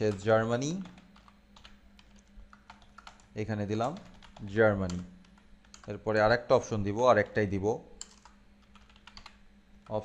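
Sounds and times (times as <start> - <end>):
keyboard typing: 0.0 - 6.0, 8.0 - 10.0
low steady hum: 0.0 - 10.0.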